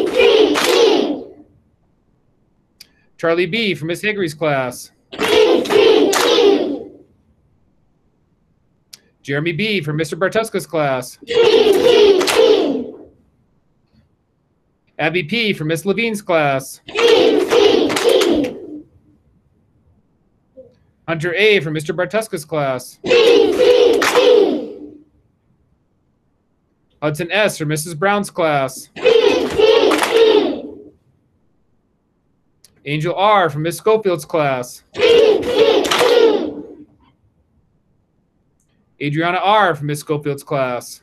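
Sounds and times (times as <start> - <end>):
children cheering together: 0.0 - 1.4, 5.2 - 6.9, 11.3 - 13.0, 16.9 - 18.8, 23.1 - 24.9, 29.0 - 30.8, 35.0 - 36.8.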